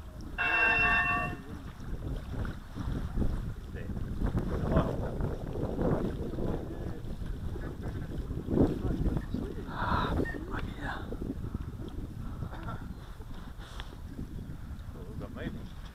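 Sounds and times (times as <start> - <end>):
wind buffeting microphone: 0.0 - 15.9.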